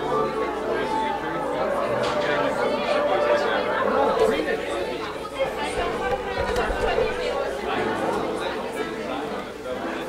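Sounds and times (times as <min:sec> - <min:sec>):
many people talking: 0:00.0 - 0:10.0.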